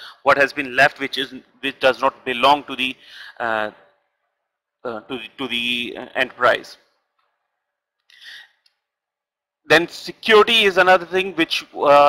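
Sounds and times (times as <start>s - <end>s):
intake of breath: 3.0s - 3.4s.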